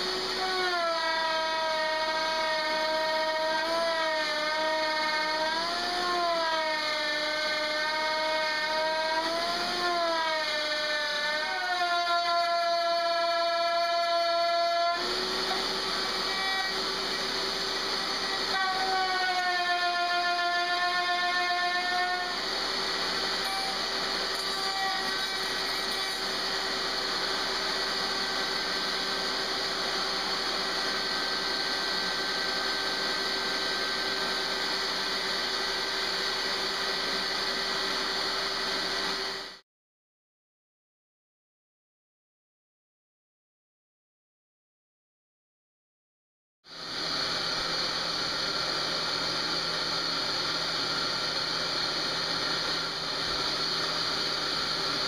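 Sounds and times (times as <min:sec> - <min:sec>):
router motor whine: 0:00.0 - 0:39.6, 0:46.7 - 0:55.0.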